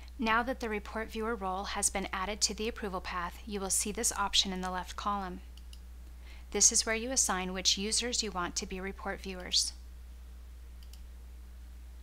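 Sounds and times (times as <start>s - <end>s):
steady low hum: 0.0s - 12.0s
computer mouse clicks: 5.6s - 5.8s, 10.8s - 11.1s.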